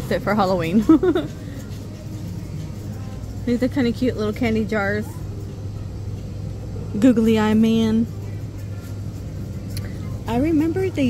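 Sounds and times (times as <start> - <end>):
low hum and rumble of shop: 0.0 - 11.0.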